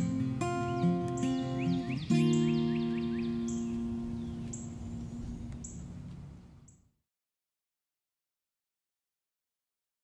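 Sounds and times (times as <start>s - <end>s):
acoustic guitar chord ringing: 0.0s - 6.0s
faint bird chirps: 0.6s - 5.9s.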